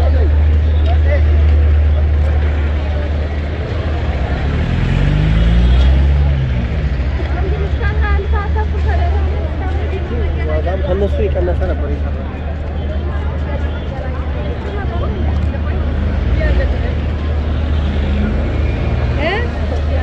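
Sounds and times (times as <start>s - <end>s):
people's voices: 0.0s - 20.0s
traffic rumble: 0.0s - 20.0s
vehicle engine passing: 1.2s - 10.4s.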